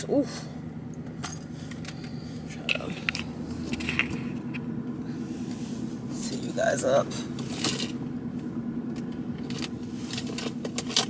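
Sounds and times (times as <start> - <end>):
car idling hum: 0.0 - 11.0.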